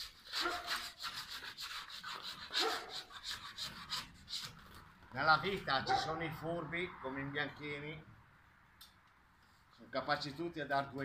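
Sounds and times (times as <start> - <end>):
paint scraper rasping on ceiling: 0.0 - 5.6.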